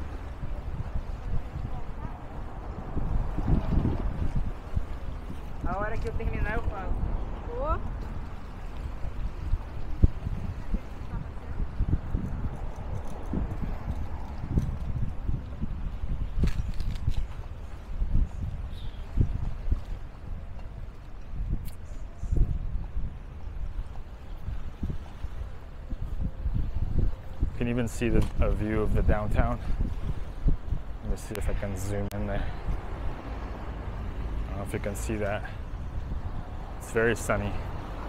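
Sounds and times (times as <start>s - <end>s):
wind rumble on microphone: 0.0s - 38.0s.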